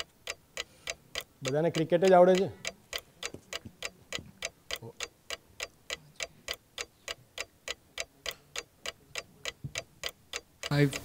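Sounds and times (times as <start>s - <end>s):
countdown clock ticking: 0.0s - 11.0s.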